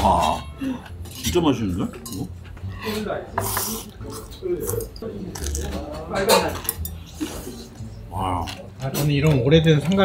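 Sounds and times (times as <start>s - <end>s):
chopsticks clinking on metal bowls: 0.1s - 2.4s, 3.4s - 7.0s.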